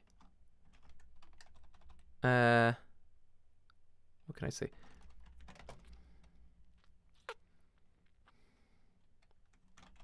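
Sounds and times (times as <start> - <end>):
faint keyboard keystrokes: 4.7 - 6.4.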